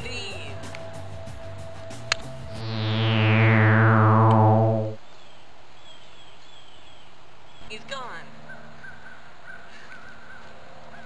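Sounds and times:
high whistle gliding downward: 2.5s - 5.0s
pulsing low electronic hum: 2.5s - 5.0s.

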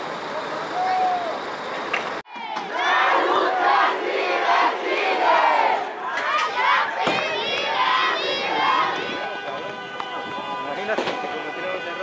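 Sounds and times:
crowd of protesters shouting: 2.3s - 12.0s.

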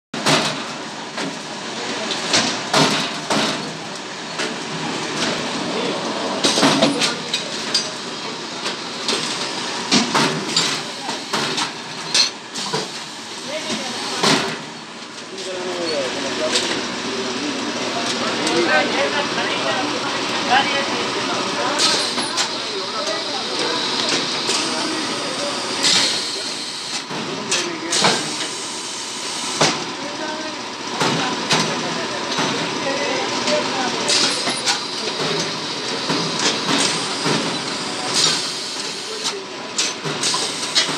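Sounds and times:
packaging machine hiss and hum: 0.2s - 18.7s, 19.8s - 40.9s
packaging machine din: 20.7s - 28.6s, 29.2s - 40.9s.

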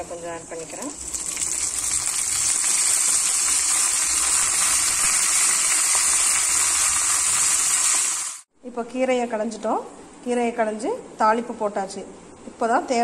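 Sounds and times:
leaves sizzling in hot oil: 0.0s - 8.5s.

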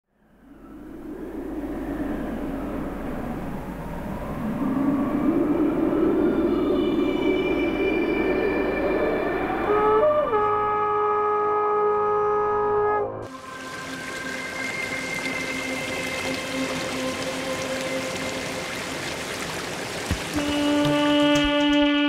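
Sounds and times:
rumbling electric trumpet drone: 9.4s - 18.5s, 20.4s - 22.0s.

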